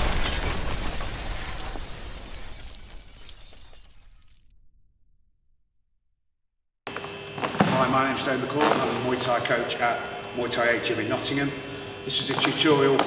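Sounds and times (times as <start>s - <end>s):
shattering crumbling effect: 0.0s - 4.7s.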